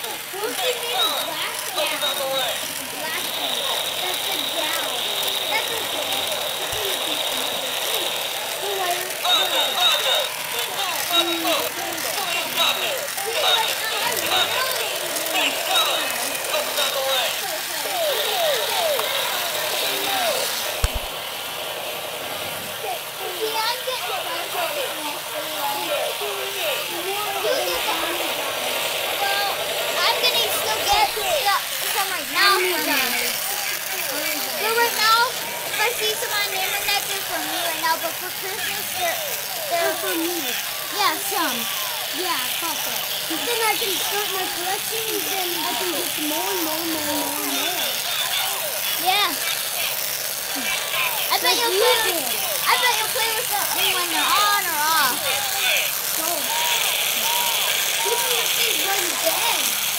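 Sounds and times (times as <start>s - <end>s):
talking toy voice clips: 0.0s - 59.9s.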